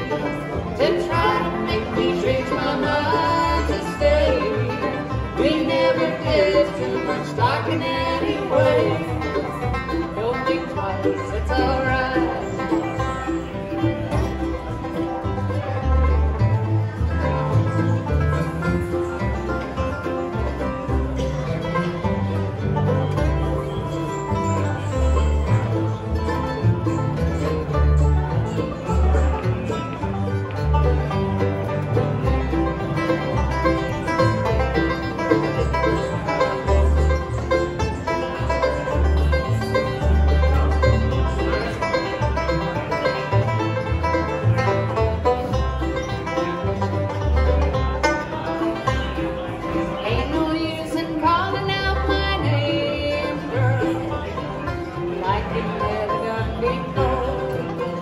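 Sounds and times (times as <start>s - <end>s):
acoustic guitar: 0.0s - 58.0s
banjo: 0.0s - 58.0s
mandolin: 0.0s - 58.0s
upright bass: 0.0s - 58.0s.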